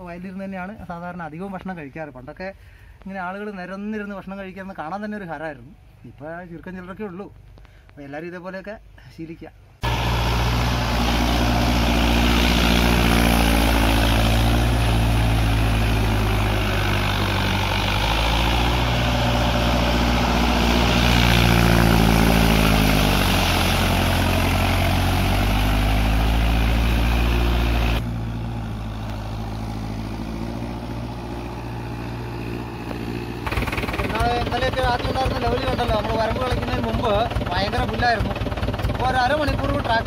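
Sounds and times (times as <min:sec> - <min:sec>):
iron wheels churning mud: 0:09.8 - 0:40.0
tractor engine under load: 0:09.8 - 0:40.0.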